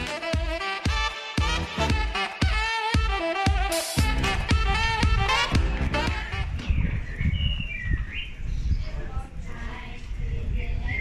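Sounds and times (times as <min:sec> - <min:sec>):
background music: 0:00.0 - 0:06.7
birds chirping: 0:03.7 - 0:09.3
low outdoor rumble: 0:04.0 - 0:07.1.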